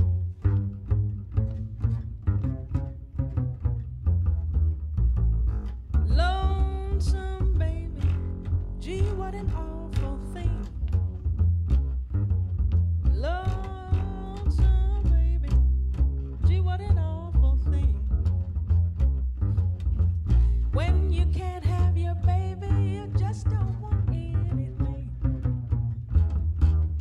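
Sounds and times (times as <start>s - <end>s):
plucked double bass: 0.0s - 27.0s
woman singing with vibrato: 6.1s - 10.8s, 13.1s - 15.5s, 20.8s - 25.2s.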